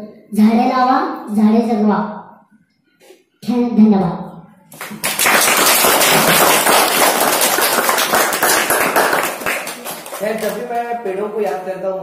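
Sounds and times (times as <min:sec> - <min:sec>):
audience applauding: 0:04.8 - 0:10.9.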